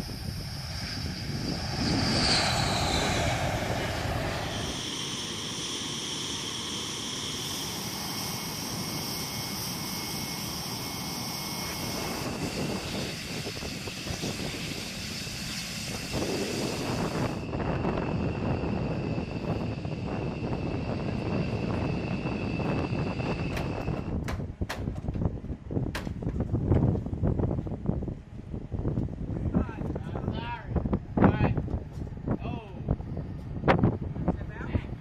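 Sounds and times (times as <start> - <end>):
high turbine whine: 0.0 - 35.0
jet turbine rumble: 0.0 - 35.0.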